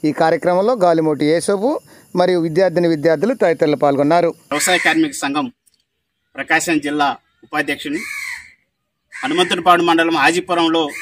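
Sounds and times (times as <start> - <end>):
crow cawing: 4.5 - 5.4, 6.2 - 11.0.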